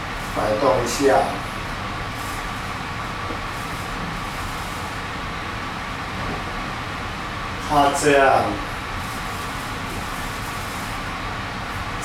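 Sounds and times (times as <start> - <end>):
even hiss: 0.0 - 5.2
faint high steady hum: 0.0 - 12.0.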